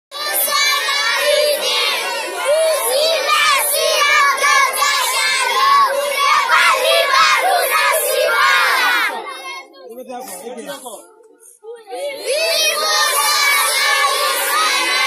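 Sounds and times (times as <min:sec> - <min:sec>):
crowd of children shouting: 0:00.1 - 0:09.7, 0:11.9 - 0:15.0.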